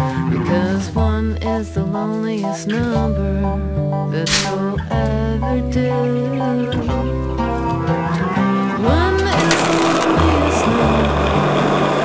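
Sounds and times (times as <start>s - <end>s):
pop song with bass line: 0.0s - 12.0s
skateboard wheels rolling on asphalt: 9.3s - 12.0s.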